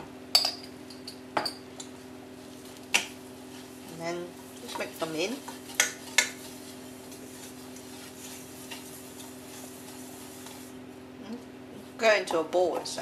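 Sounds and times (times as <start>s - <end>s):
spoon scraping in saucepan: 3.5s - 10.8s.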